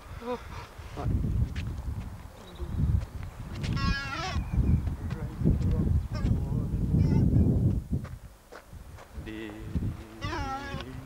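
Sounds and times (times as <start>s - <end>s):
wind rumbling on microphone: 0.0s - 11.0s
high-pitched bleat-like call: 10.2s - 11.0s.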